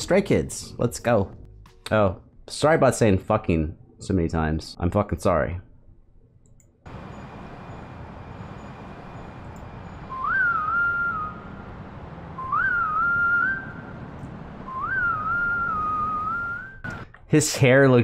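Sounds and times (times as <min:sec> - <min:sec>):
low rumbling hiss: 0:06.9 - 0:17.7
whistled tune: 0:09.8 - 0:11.6, 0:12.4 - 0:13.9, 0:14.6 - 0:16.9.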